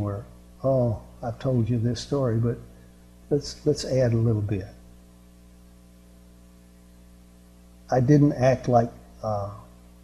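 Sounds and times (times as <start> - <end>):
man talking: 0.0 - 2.6, 3.3 - 4.7, 7.9 - 9.7
faint electrical mains hum: 0.0 - 10.0.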